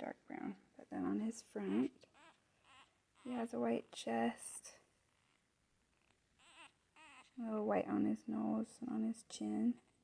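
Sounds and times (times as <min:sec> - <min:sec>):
puppy squeak-whimper: 0:01.8 - 0:03.4, 0:06.0 - 0:07.4.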